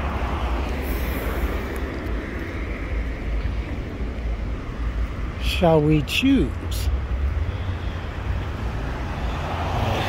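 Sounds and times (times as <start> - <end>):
cars passing: 0.0 - 10.0
street traffic rumble: 0.0 - 10.0.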